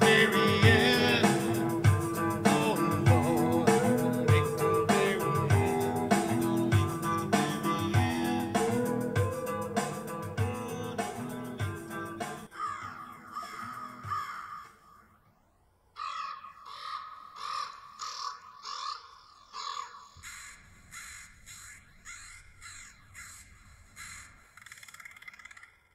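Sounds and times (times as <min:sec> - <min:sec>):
guitar music: 0:00.0 - 0:12.5
harsh crow caws: 0:12.5 - 0:15.2, 0:16.0 - 0:25.7.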